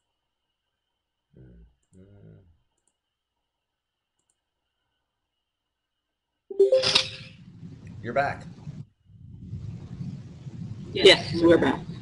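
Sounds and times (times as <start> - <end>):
faint low murmur: 1.3 - 2.6.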